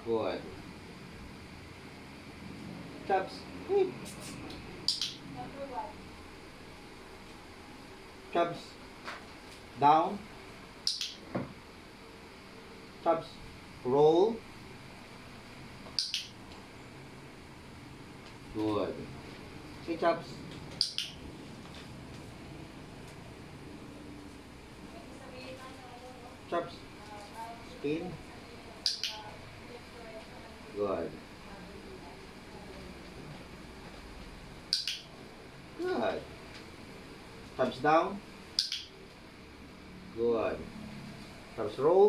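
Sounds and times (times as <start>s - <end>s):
sharp high-pitched clicks: 4.8s - 5.3s, 10.8s - 11.3s, 15.8s - 16.4s, 20.7s - 21.3s, 28.8s - 29.4s, 34.7s - 35.2s, 38.5s - 39.1s.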